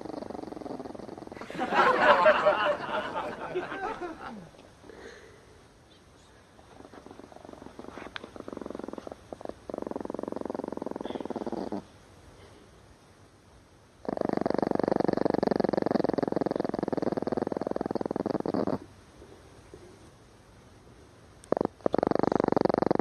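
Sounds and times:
small dog growling: 0:00.0 - 0:01.4, 0:06.8 - 0:11.9, 0:14.0 - 0:18.9, 0:21.4 - 0:23.0.

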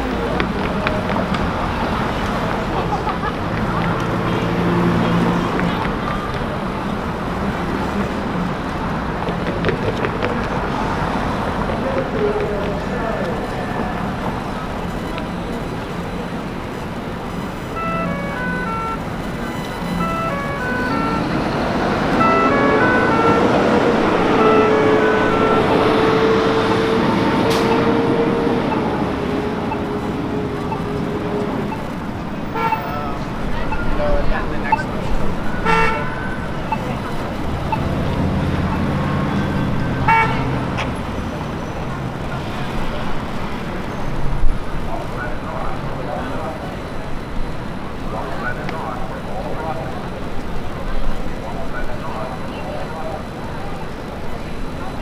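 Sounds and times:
road traffic: 0:00.0 - 0:55.0
voices of people passing: 0:00.0 - 0:55.0
horn-like tone: 0:17.3 - 0:34.1, 0:35.4 - 0:37.0, 0:38.7 - 0:40.6.

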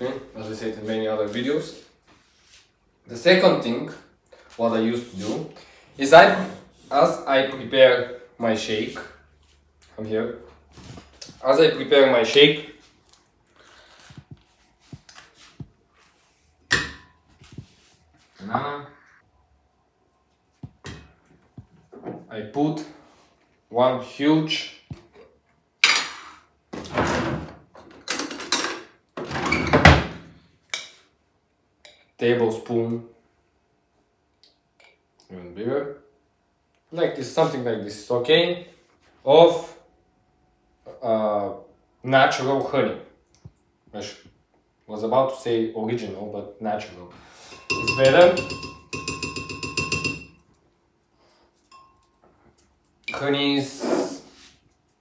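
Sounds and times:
metal spoon scraping and clattering: 0:47.4 - 0:50.4.

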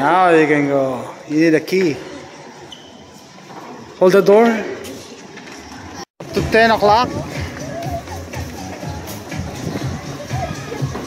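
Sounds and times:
faint indistinct voices: 0:07.1 - 0:11.0.

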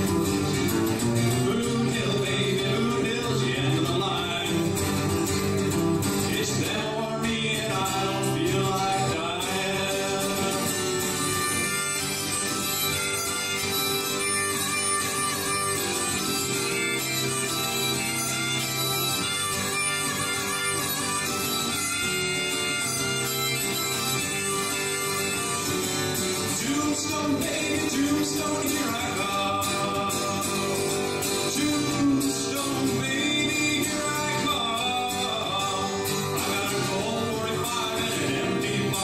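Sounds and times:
harmonica long notes: 0:00.0 - 0:39.0
strummed acoustic guitar: 0:00.0 - 0:39.0.

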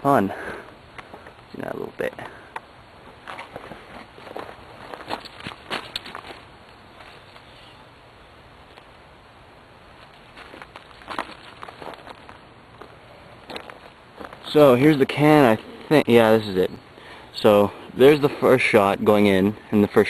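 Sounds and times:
footsteps on gravel: 0:03.2 - 0:07.5, 0:10.0 - 0:15.6.

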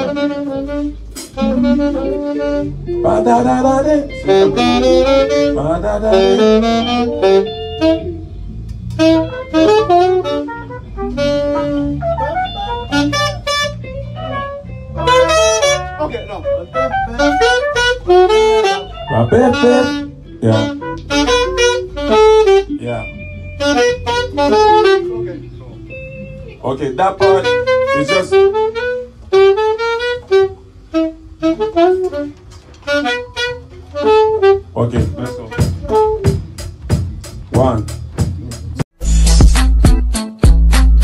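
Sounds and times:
saxophone horn lines: 0:00.0 - 0:36.8
electric bass: 0:00.0 - 0:41.0
keyboard: 0:00.0 - 0:41.0
drums: 0:34.9 - 0:41.0.

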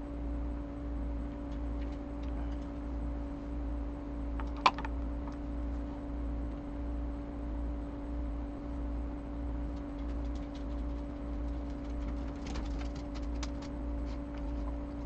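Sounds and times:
background hum with low drone: 0:00.0 - 0:15.0.

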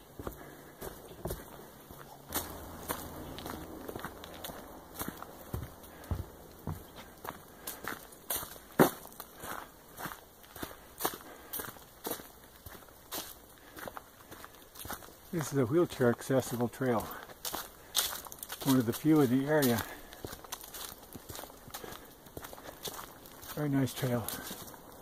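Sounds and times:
footsteps on dirt trail: 0:00.0 - 0:25.0.

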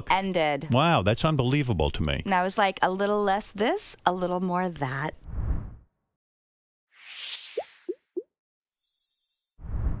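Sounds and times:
whoosh: 0:05.3 - 0:05.8.

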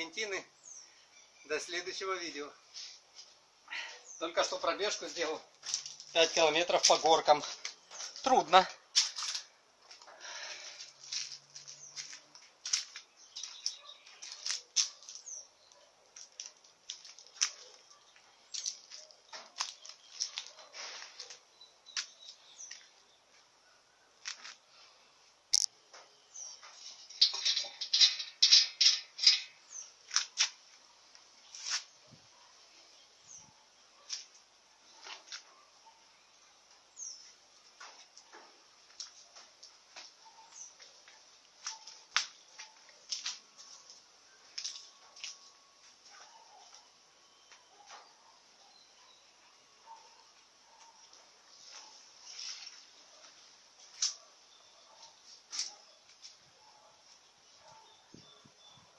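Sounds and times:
small birds chirping: 0:00.0 - 0:58.9.

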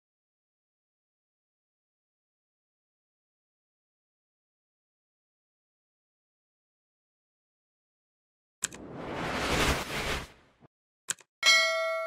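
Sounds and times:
noisy whoosh: 0:08.6 - 0:10.7
bright bell ding: 0:11.4 - 0:12.0.

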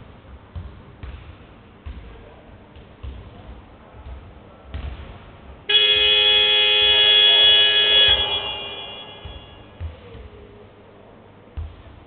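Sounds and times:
game clock horn buzzing: 0:05.7 - 0:09.8
thump: 0:09.1 - 0:10.3.

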